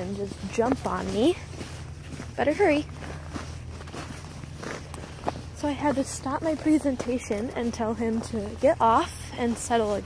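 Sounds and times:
footsteps crunching in snow: 0.0s - 10.0s
low steady rumble: 0.0s - 10.0s.

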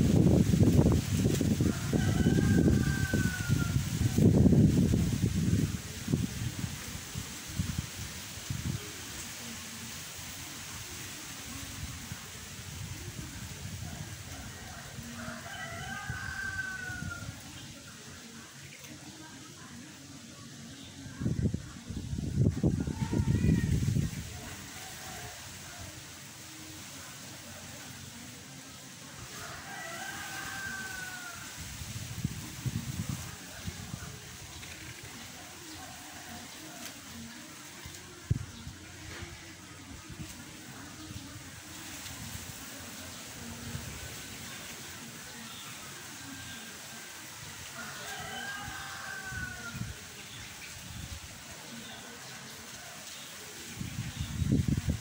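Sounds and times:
wind gusts on microphone: 0.0s - 18.8s, 20.9s - 27.0s, 29.2s - 45.4s, 47.5s - 51.7s, 53.5s - 55.0s
steady hiss: 0.0s - 55.0s
rooster crowing: 1.5s - 4.1s, 14.4s - 17.4s, 29.3s - 31.6s, 47.6s - 49.9s.

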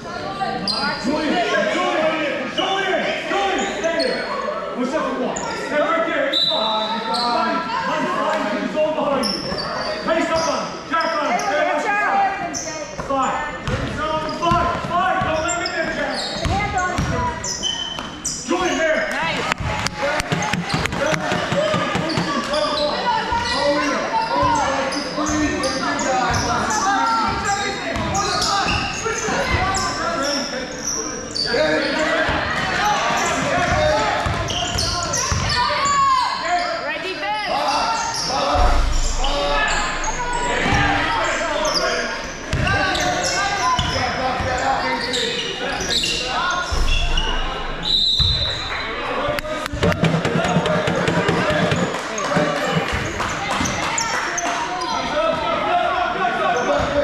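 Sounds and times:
people shouting in a hall: 31.3s - 57.0s.

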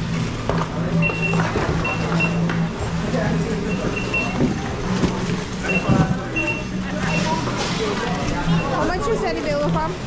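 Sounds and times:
barcode scanner beeps: 1.0s - 2.6s, 3.6s - 7.6s, 8.3s - 9.0s.

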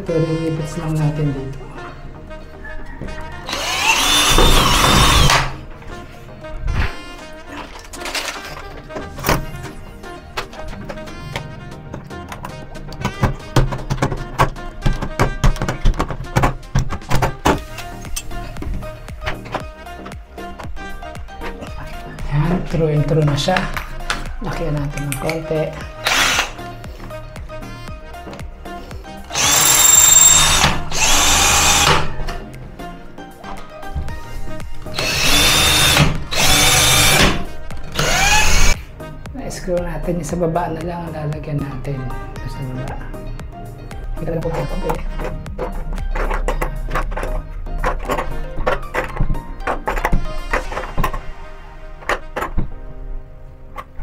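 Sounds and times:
cordless drill whining: 3.0s - 5.6s, 25.7s - 26.7s, 29.2s - 32.2s, 34.9s - 38.8s.

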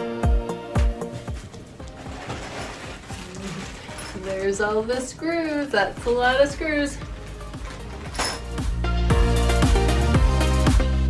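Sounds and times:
background music: 0.0s - 11.0s
plastic and packing rustle: 1.0s - 6.2s.

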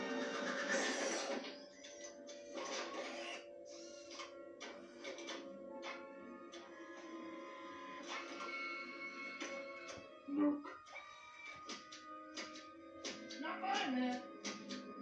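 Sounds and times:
film music from tv speaker: 0.0s - 15.0s.

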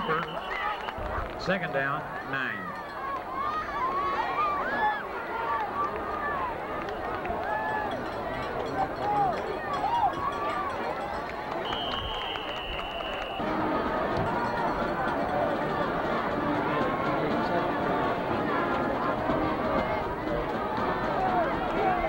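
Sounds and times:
referee's whistle: 0.0s - 1.0s, 11.6s - 13.5s
crowd babble: 0.0s - 22.0s.

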